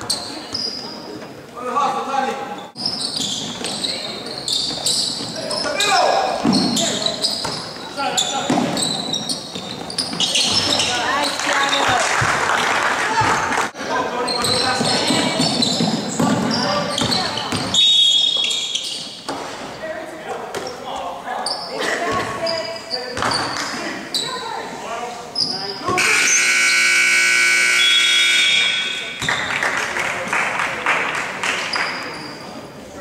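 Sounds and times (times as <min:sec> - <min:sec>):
players' voices: 0:00.0 - 0:33.0
shoe squeaks on hardwood: 0:02.6 - 0:11.4, 0:14.2 - 0:19.3, 0:25.4 - 0:26.5
basketball bouncing: 0:14.4 - 0:17.8
scoreboard buzzer blast: 0:26.0 - 0:29.2.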